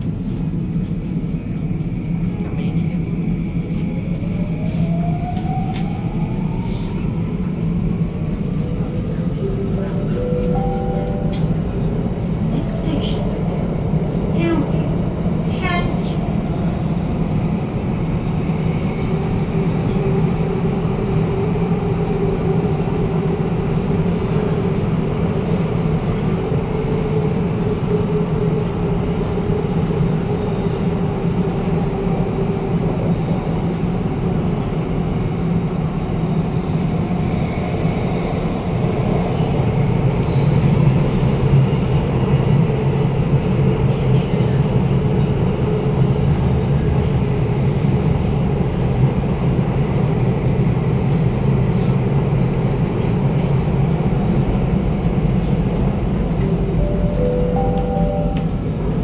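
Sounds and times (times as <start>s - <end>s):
metro train rumble: 0.0s - 59.0s.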